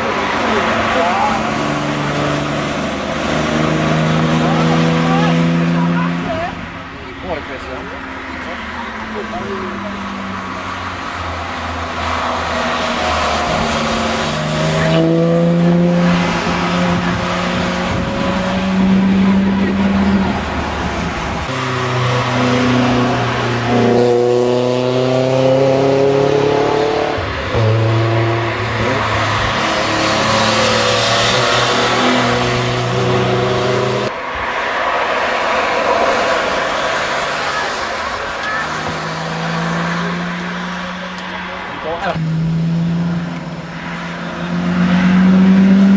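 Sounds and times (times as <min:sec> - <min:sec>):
car engines driving past: 0:00.0 - 0:45.9.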